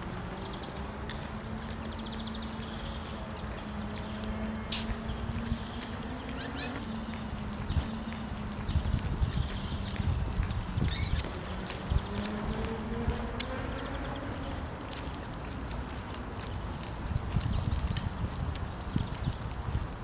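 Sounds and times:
footsteps on asphalt: 0.0s - 20.0s.

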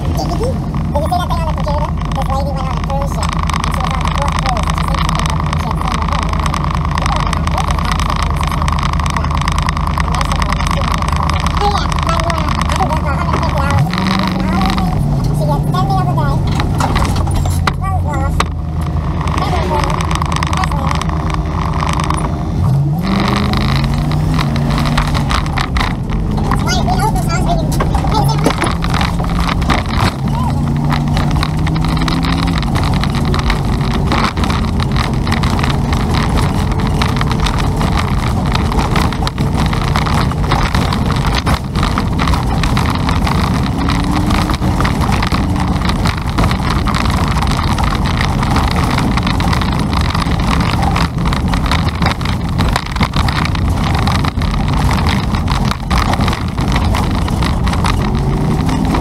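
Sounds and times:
car engine accelerating: 0.0s - 59.0s
tyre and wind road noise: 0.0s - 59.0s.

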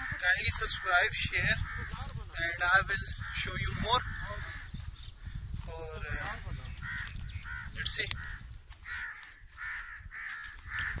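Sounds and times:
crow cawing: 0.0s - 2.2s, 3.1s - 5.4s, 6.7s - 11.0s.

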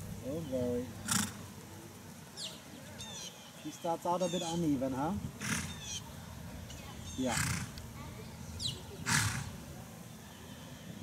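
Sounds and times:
horse snorting: 1.0s - 1.4s, 5.4s - 5.8s, 7.3s - 7.8s, 9.0s - 9.6s.

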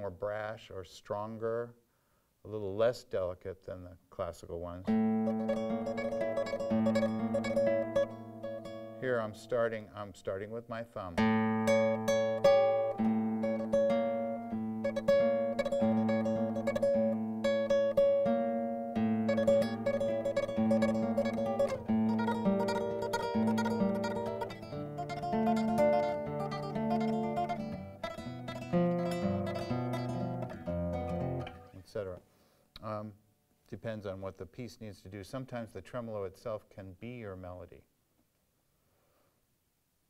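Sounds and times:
flamenco guitar tremolo: 4.9s - 9.7s, 11.2s - 31.8s.

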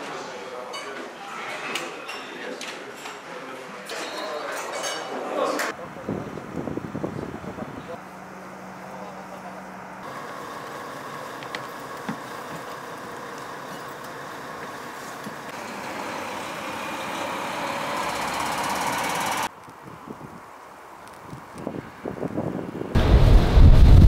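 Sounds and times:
coach engine running: 6.0s - 19.5s.

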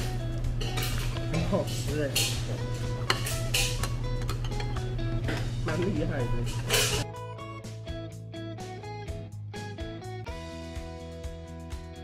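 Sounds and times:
light background music: 0.0s - 12.0s
cutlery clinking on plates: 0.6s - 5.5s, 6.5s - 7.0s.

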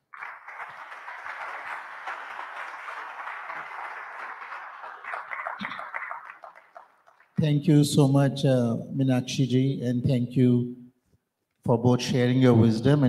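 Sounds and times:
audience applauding: 0.0s - 7.4s.

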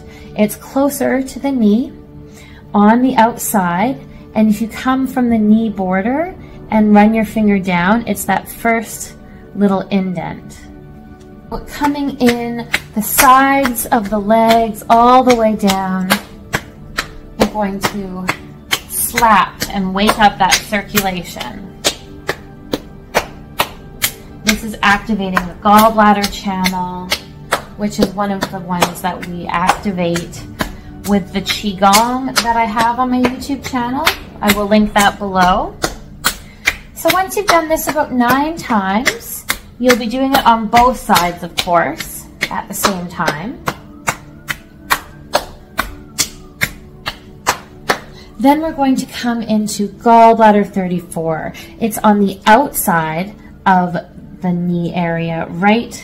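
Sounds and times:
soft background music: 0.0s - 56.0s
hands slapping legs: 11.8s - 48.7s.

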